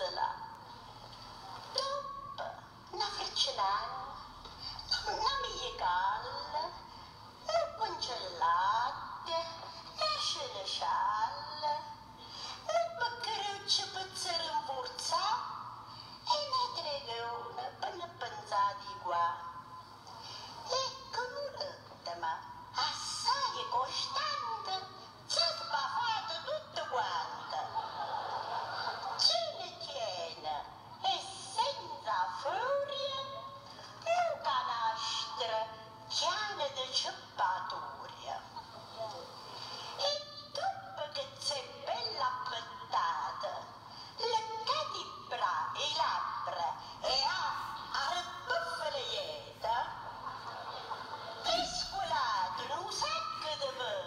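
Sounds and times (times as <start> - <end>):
woman reciting a poem: 0.0 - 0.7, 1.6 - 27.9, 29.1 - 39.4, 40.0 - 50.2, 51.4 - 54.0.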